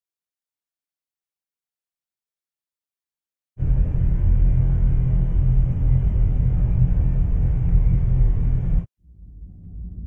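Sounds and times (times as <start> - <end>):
spaceship engine rumble: 3.6 - 10.0.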